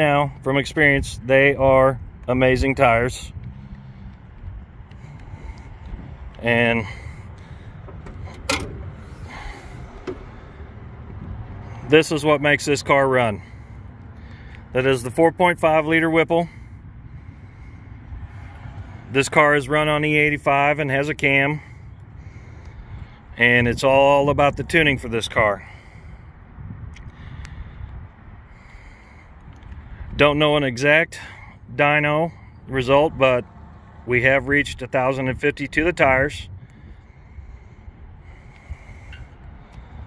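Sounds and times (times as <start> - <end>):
hood latch click: 7.8 - 9.0, 9.9 - 10.4.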